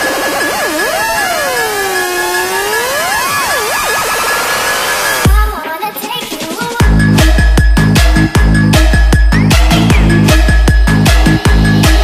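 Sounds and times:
steady high synth tone: 0:00.0 - 0:05.3
synthesizer tones sweeping in pitch: 0:00.0 - 0:05.3.

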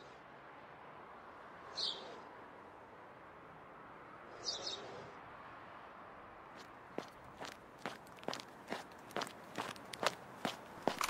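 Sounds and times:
footsteps walking: 0:06.6 - 0:11.0.

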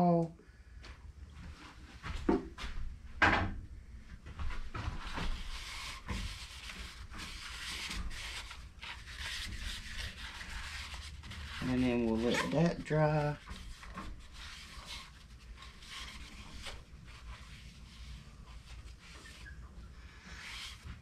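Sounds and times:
paper towel scrubbing wood bowl: 0:05.0 - 0:21.0.

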